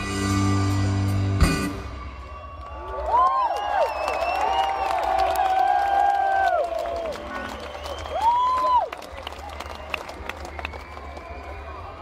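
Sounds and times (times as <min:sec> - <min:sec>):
crowd cheering and clapping: 0:01.4 - 0:12.0
whoops: 0:02.0 - 0:11.8.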